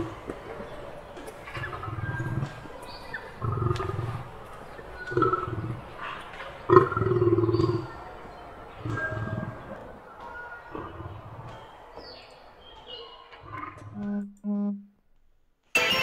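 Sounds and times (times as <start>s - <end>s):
lion growling: 1.5s - 4.4s, 5.0s - 8.0s, 8.8s - 10.0s, 10.7s - 11.7s.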